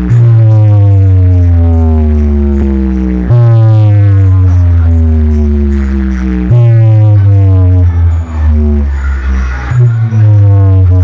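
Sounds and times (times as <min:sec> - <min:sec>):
deep droning bass sliding down: 0:00.0 - 0:11.0.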